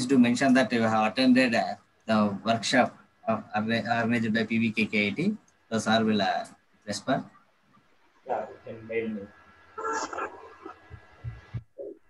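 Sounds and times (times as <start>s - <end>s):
man talking over video call: 0.0s - 7.4s, 8.3s - 9.3s.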